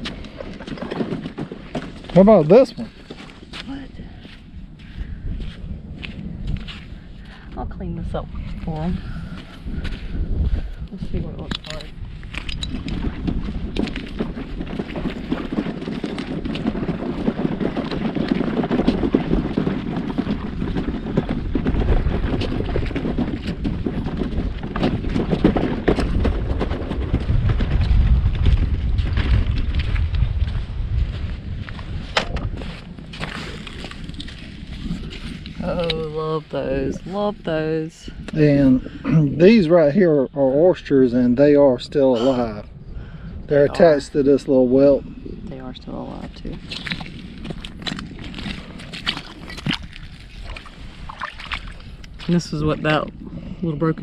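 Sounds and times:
footsteps on sand and shell: 0.0 - 7.5, 27.2 - 35.8, 46.3 - 52.5
wind buffeting microphone: 0.0 - 54.0.

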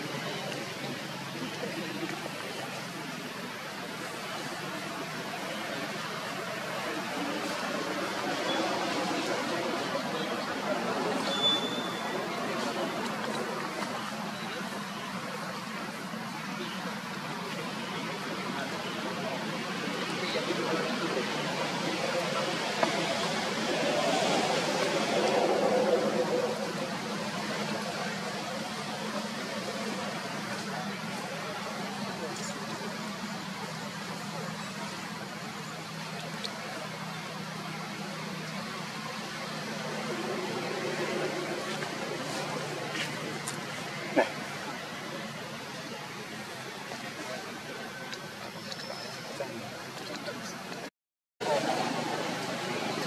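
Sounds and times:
steady outdoor hum: 0.0 - 53.0.

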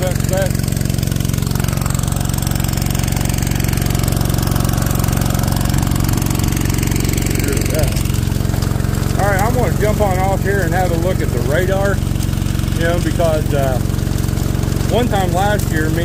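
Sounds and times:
small gasoline engine running: 0.0 - 16.0.

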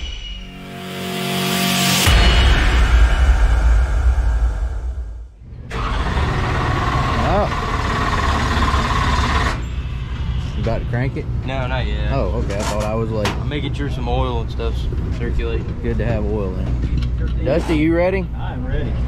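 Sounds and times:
loud boom with rumbling tail: 2.0 - 5.5
low rumble and hiss outdoors: 9.6 - 19.0.

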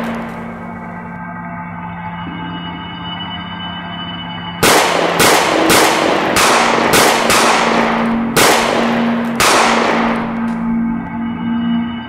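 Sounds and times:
gunshots with ringing echo: 0.0 - 1.0, 4.6 - 11.0
ambient background music: 0.0 - 12.0.

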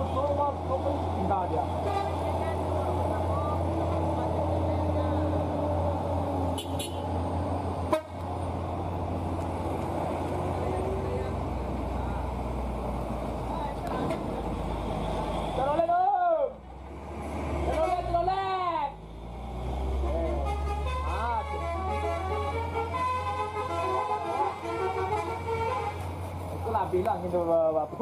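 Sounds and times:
truck engine humming: 0.0 - 28.0
car horns tooting: 6.5 - 7.2, 20.3 - 26.1.

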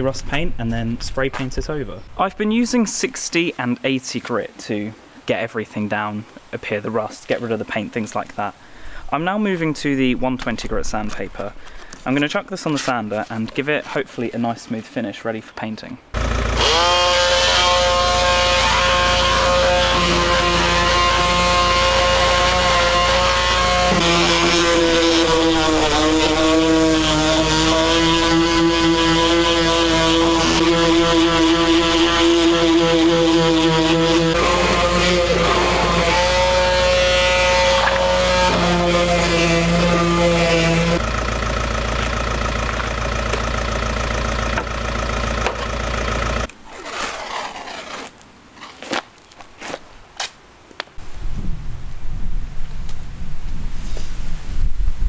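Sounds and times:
electric orbital sander on metal: 16.2 - 48.1.

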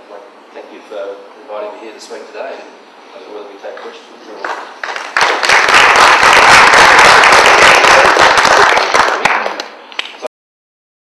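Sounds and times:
audience applause: 4.8 - 10.2.

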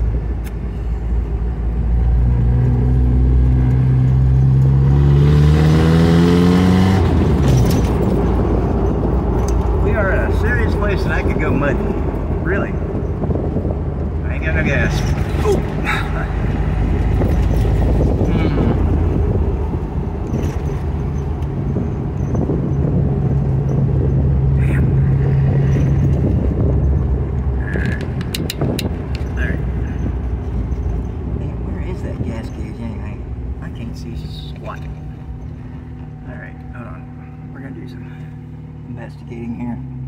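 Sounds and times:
car engine running: 0.0 - 40.0
road and wind noise: 0.0 - 40.0
sharp clicks: 27.7 - 29.4.

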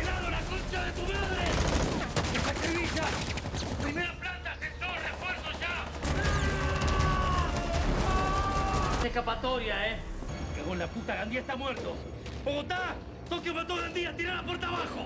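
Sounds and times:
rapid automatic gunfire: 0.0 - 4.2, 4.9 - 9.4
people shouting: 6.0 - 9.1.

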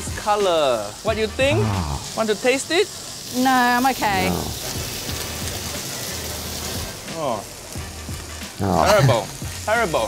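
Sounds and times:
rice sizzling in a wok: 0.0 - 10.0.

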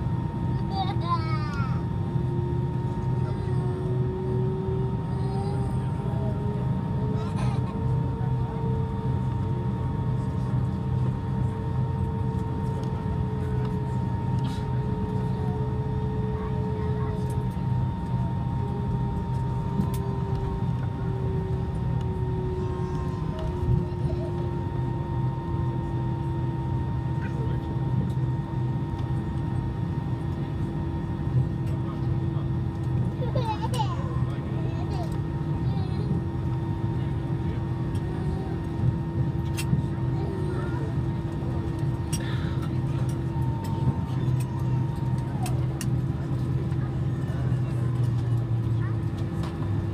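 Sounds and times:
airliner cabin low rumble: 0.0 - 49.9
jet engine whine: 0.0 - 49.9.

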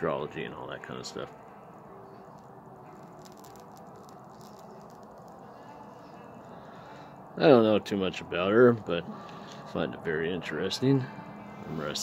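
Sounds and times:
cigarette crackling ticks: 2.2 - 5.8.

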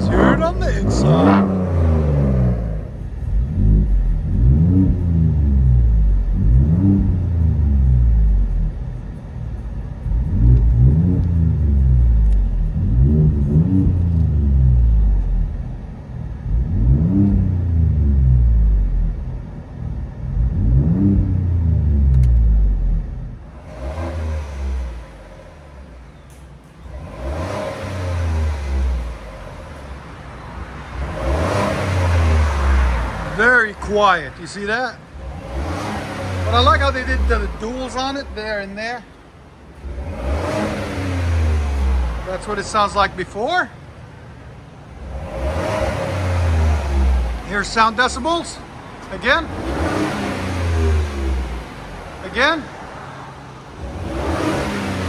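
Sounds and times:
truck engine revving inside cab: 0.0 - 30.0, 30.8 - 39.1, 39.7 - 43.7, 44.9 - 55.0
exhaust revving outside: 0.0 - 55.0.

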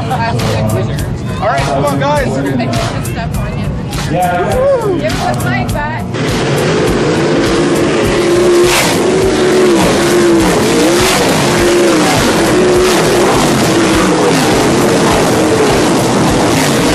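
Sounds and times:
racing car engines passing: 0.0 - 16.9.

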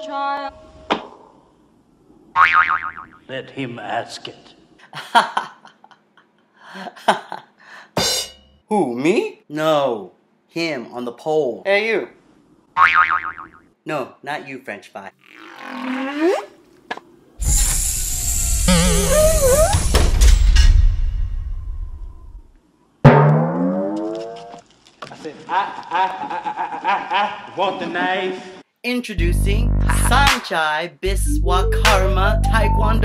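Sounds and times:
springy boing: 2.4 - 3.2, 12.8 - 13.6, 23.0 - 24.6
wavering held musical tone: 31.2 - 33.0.

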